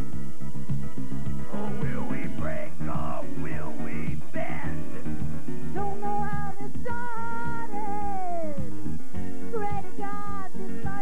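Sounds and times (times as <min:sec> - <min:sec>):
person singing: 0:01.5 - 0:04.8, 0:05.8 - 0:08.7.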